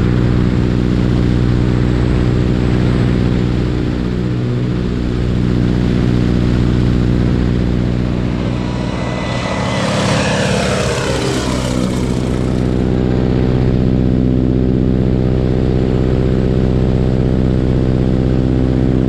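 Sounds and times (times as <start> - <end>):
biplane engine and propeller: 0.0 - 19.0
wind rushing past microphone: 5.6 - 13.0
rushing noise with falling pitch: 5.8 - 13.0.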